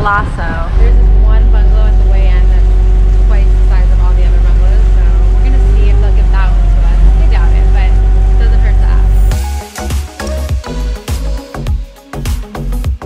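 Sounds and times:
wind on microphone: 0:00.0 - 0:09.4
motorboat engine rumble: 0:00.0 - 0:11.7.

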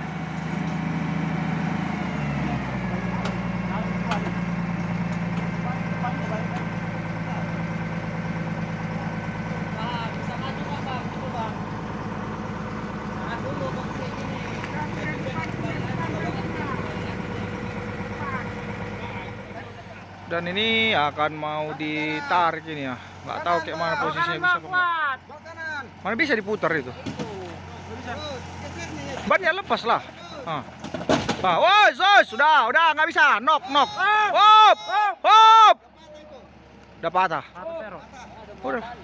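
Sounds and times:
truck diesel engine idling: 0:00.0 - 0:39.0.

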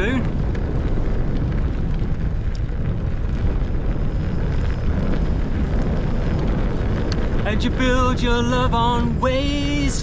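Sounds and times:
grit ticking under tyre: 0:00.0 - 0:10.0
wind buffeting microphone: 0:00.0 - 0:10.0.

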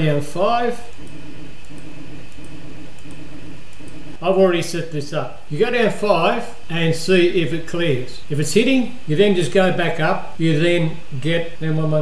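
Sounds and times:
stepper motors humming: 0:00.0 - 0:05.2
faint motor ticks: 0:00.9 - 0:04.2.

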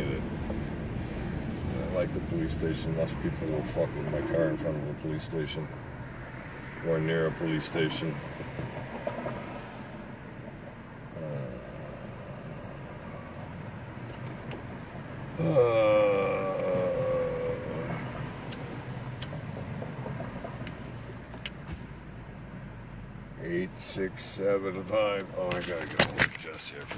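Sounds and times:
car idling hum: 0:00.0 - 0:26.9
person saying uh: 0:11.1 - 0:12.9, 0:15.4 - 0:18.1.

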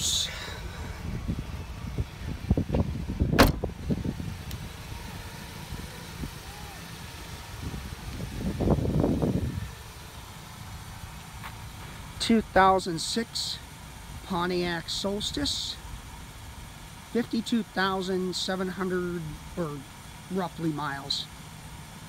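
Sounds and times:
low steady rumble: 0:00.0 - 0:22.0
rustling and scuffing: 0:11.4 - 0:12.0.

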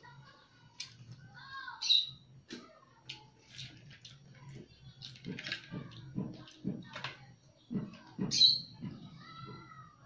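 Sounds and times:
bird chirping: 0:07.6 - 0:09.0.

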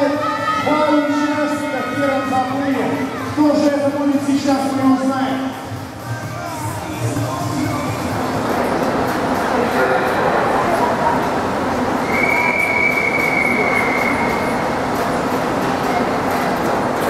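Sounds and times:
echoing hubbub in pool hall: 0:00.0 - 0:17.0
referee's whistle long note: 0:12.0 - 0:14.5.

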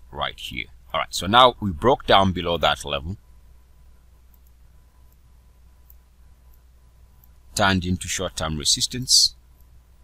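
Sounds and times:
person speaking: 0:00.0 - 0:03.3, 0:07.5 - 0:09.4
low steady hum: 0:00.0 - 0:10.0
computer mouse clicks: 0:04.3 - 0:07.4.

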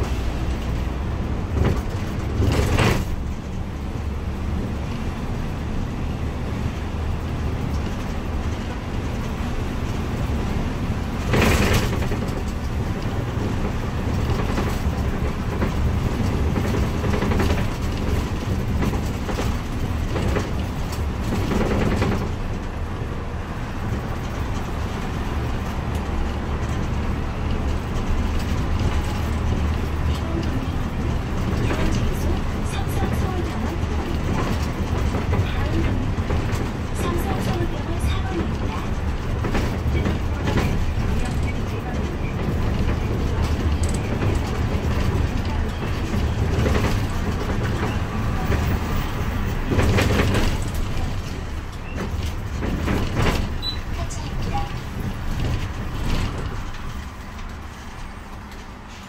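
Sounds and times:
loud clatter: 0:00.0 - 0:03.8, 0:07.5 - 0:22.9, 0:23.8 - 0:59.0
bus engine and road rumble: 0:00.0 - 0:59.0.

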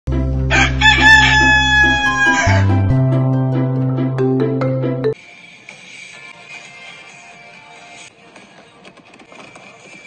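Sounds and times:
background music: 0:00.1 - 0:08.6
rooster crowing: 0:00.5 - 0:02.8.

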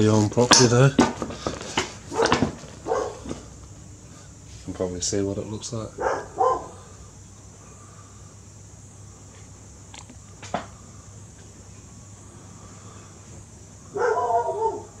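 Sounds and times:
low steady hum: 0:00.0 - 0:15.0
dog vocalising: 0:02.1 - 0:03.4, 0:06.0 - 0:06.8, 0:13.9 - 0:15.0.

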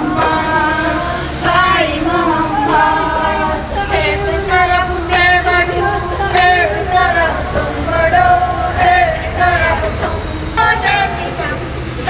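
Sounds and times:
indistinct voices: 0:00.0 - 0:12.0
steady low rumble: 0:00.0 - 0:12.0.

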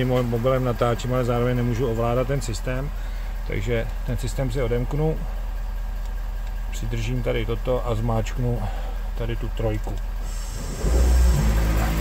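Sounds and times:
air compressor humming: 0:10.1 - 0:12.0.

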